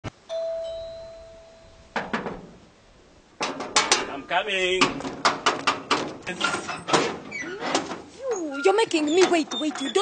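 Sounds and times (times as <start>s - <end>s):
doorbell chime ding: 0.3s - 1.8s.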